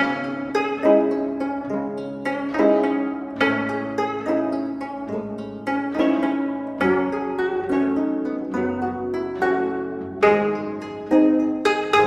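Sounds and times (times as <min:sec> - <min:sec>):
plucked zither melody: 0:00.0 - 0:12.0.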